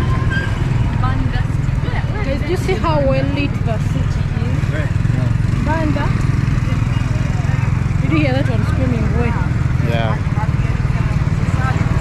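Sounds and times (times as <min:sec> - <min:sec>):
faint voices: 0:00.0 - 0:12.0
traffic engine rumble: 0:00.0 - 0:12.0.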